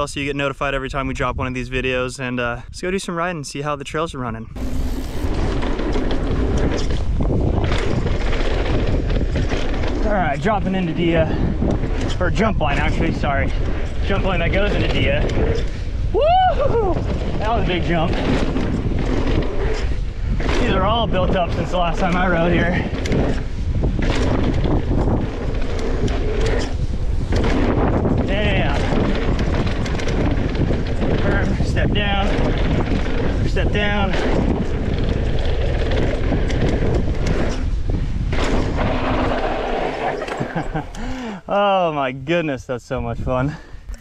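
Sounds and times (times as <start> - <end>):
wind buffeting microphone: 0.0 - 44.0
bike tyres rolling over dirt: 4.6 - 41.4.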